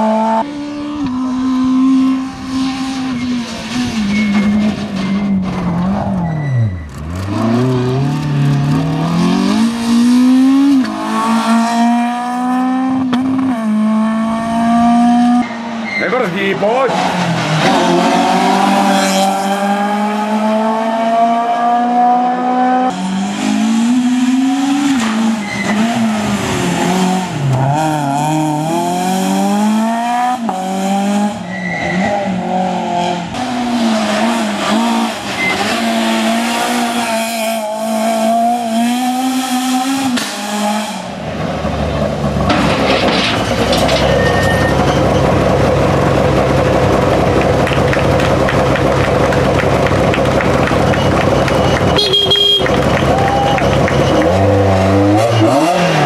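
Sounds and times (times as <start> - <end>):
outdoor crowd noise: 0.0 - 56.0
rally car engine revving: 0.0 - 56.0.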